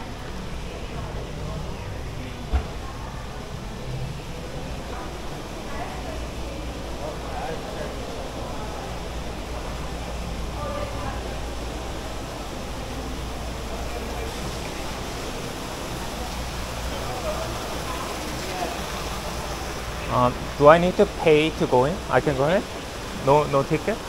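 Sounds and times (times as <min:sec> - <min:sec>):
murmur of distant voices: 0:00.0 - 0:24.0
steady rushing hiss: 0:03.2 - 0:24.0.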